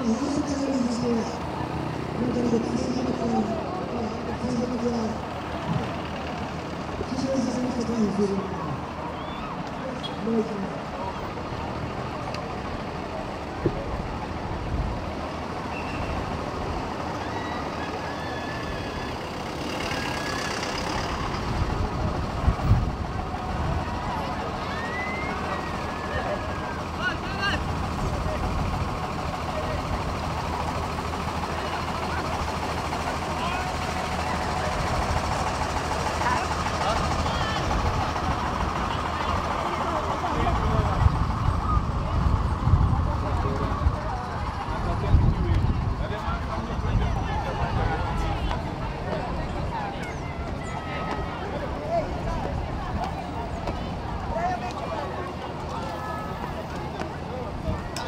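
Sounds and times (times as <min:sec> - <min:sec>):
bus and truck engines: 0:00.0 - 0:58.0
crowd chatter: 0:00.0 - 0:58.0.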